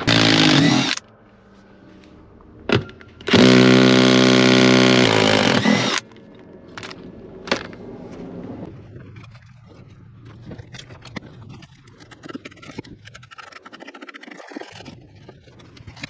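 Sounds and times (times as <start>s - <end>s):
impact driver bursts: 0.0s - 1.0s, 3.3s - 6.0s.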